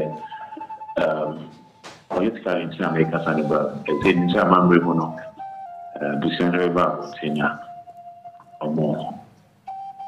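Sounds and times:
simple background melody: 0.0s - 10.0s.

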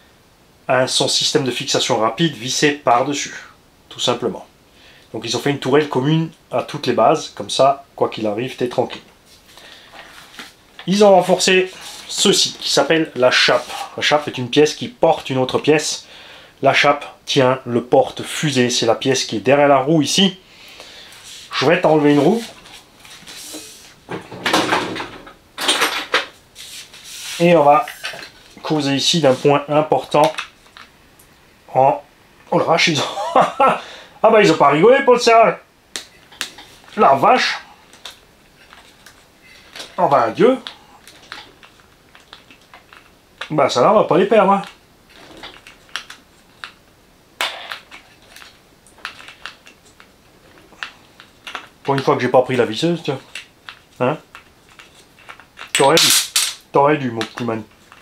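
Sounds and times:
rattling and scraping of parts: 47.4s - 52.0s, 53.1s - 56.5s.

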